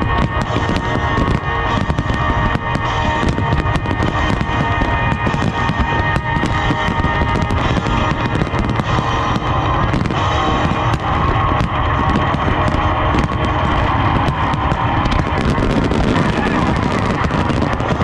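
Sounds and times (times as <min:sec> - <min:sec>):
firework shells bursting: 0:00.0 - 0:18.0
music soundtrack: 0:00.0 - 0:18.0.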